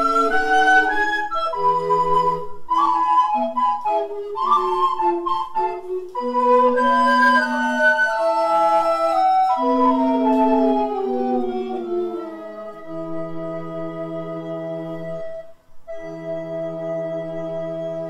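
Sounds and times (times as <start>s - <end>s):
recorder ensemble playing: 0.0s - 18.0s.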